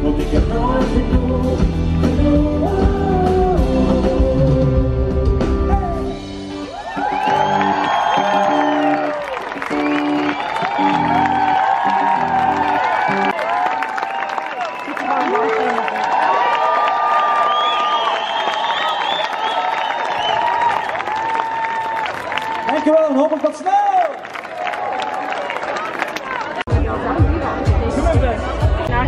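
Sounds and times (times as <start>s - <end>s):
live band music: 0.0s - 13.3s
crowd cheering and clapping: 5.3s - 27.0s.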